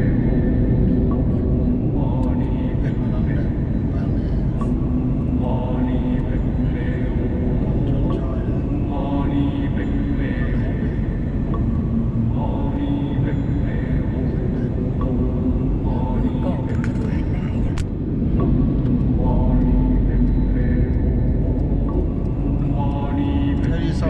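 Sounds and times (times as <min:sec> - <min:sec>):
people talking: 0:15.9 - 0:17.8, 0:22.7 - 0:24.0.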